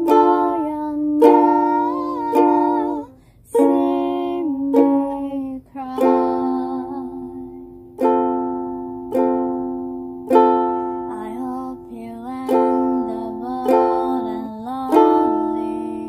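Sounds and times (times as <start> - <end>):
person singing softly: 0.0 - 8.2, 10.3 - 16.0
ukulele chords strummed: 0.0 - 16.0.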